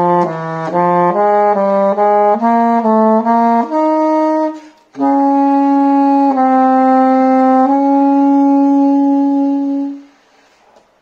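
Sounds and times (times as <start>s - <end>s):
baritone saxophone long note: 0.0s - 10.1s.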